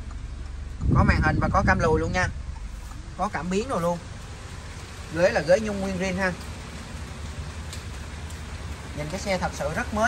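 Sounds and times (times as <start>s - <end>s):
low rumble: 0.0s - 9.0s
rain falling: 2.4s - 10.0s.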